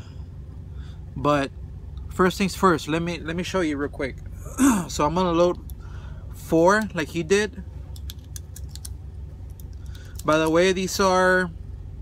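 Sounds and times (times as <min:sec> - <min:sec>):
low steady hum: 0:00.0 - 0:12.0
cartridges clicking into magazine: 0:07.9 - 0:10.6.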